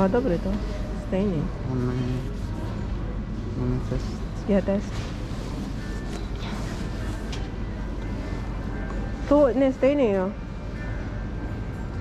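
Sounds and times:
faint background music: 0:00.0 - 0:12.0
store hum and hiss: 0:00.0 - 0:12.0.

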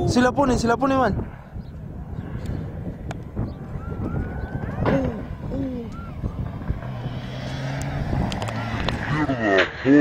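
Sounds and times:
rally car engine running: 0:06.0 - 0:09.8.

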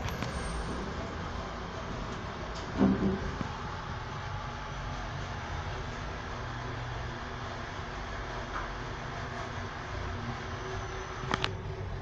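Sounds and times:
elevator mechanical rumble: 0:00.0 - 0:12.0.

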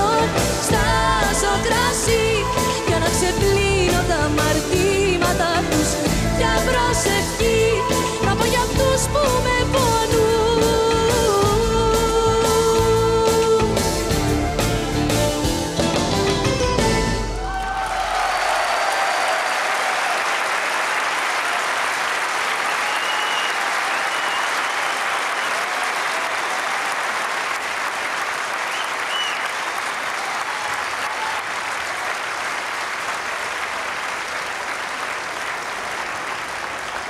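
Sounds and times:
audience applauding: 0:17.4 - 0:37.0.

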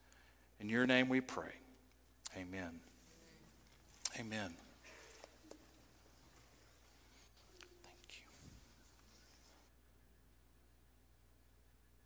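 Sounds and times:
rustles of people moving: 0:02.0 - 0:09.7
faint whispered voices: 0:02.3 - 0:09.7.

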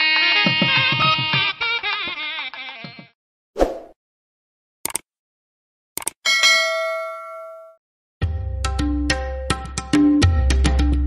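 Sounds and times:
notification bell ding: 0:06.3 - 0:07.8.

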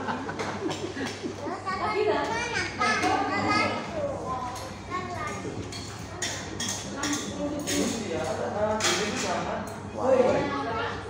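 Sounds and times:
chatter of several voices: 0:00.3 - 0:11.0.

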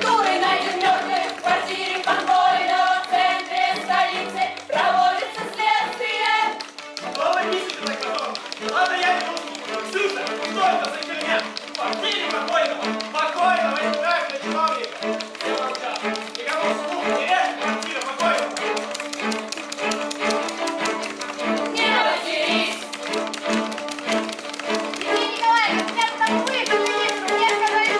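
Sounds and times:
voices singing: 0:00.0 - 0:14.4, 0:21.4 - 0:23.2
rapid typing: 0:00.0 - 0:27.9
string ensemble: 0:00.0 - 0:27.9
voices speaking: 0:25.0 - 0:27.9.

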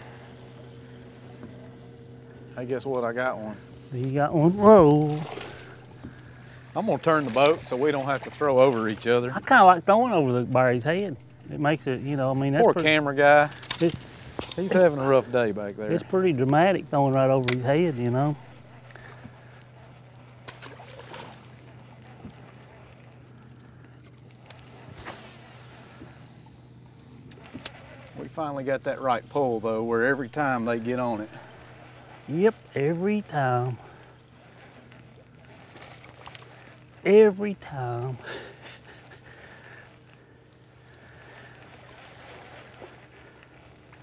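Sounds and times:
electric trolling motor humming: 0:00.0 - 0:44.0
small waves lapping against hull: 0:00.0 - 0:44.0.

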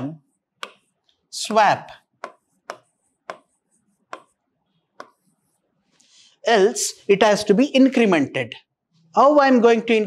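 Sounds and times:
marker ticking and scratching on board: 0:00.3 - 0:05.7.

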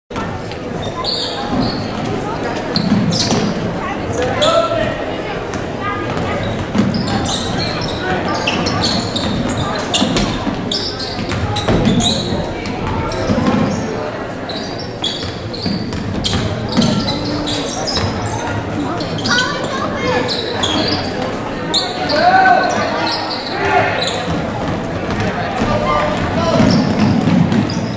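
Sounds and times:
spectators chattering: 0:00.1 - 0:27.9.

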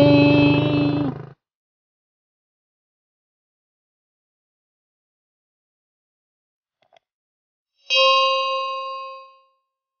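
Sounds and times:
bell ding: 0:07.9 - 0:09.6.

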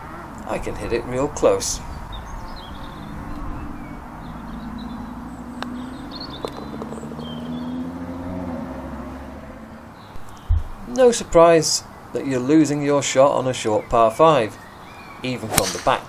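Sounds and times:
low engine hum: 0:00.0 - 0:10.8
bird chirps: 0:01.8 - 0:08.2, 0:09.9 - 0:10.6, 0:13.8 - 0:16.0
putter striking golf ball: 0:15.5 - 0:16.0.

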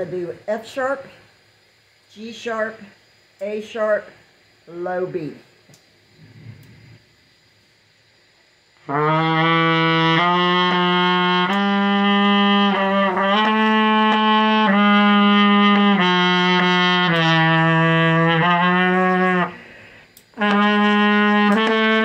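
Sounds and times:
low trumpet scale notes: 0:08.8 - 0:19.6, 0:20.4 - 0:22.0.

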